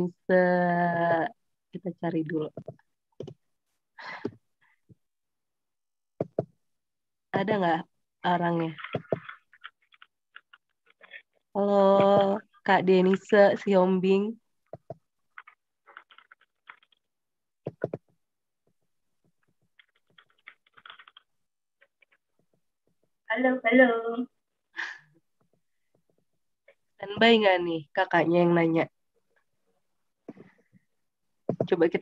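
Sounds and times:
faint keyboard typing: 2.4s - 3.4s, 6.2s - 6.6s, 8.5s - 13.7s, 14.7s - 23.2s, 31.5s - 32.0s.

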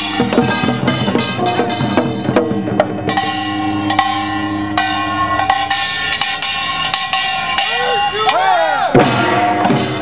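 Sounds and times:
brass gongs ringing: 0.0s - 10.0s
faint drum beats: 0.0s - 10.0s.

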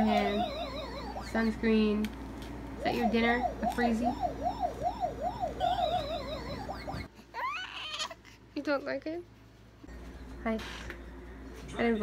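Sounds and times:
electronic siren yelp: 0.0s - 1.5s, 2.8s - 7.1s
higher warbling tone: 2.8s - 7.1s.

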